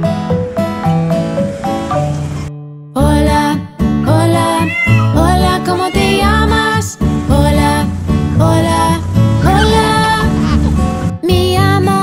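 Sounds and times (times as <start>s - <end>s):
children's song music: 0.0s - 12.0s
cat meowing: 4.4s - 6.8s.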